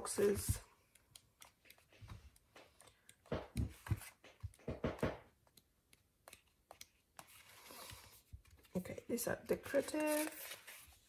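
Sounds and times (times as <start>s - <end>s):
paper pages flipping: 0.0s - 4.7s, 5.3s - 11.0s.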